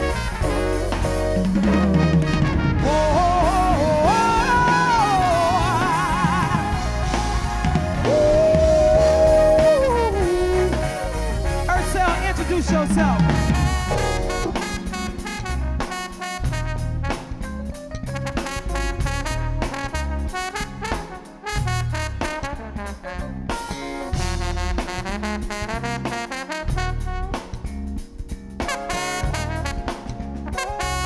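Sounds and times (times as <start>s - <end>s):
live band playing: 0.0s - 31.0s
trombone lead line: 0.0s - 31.0s.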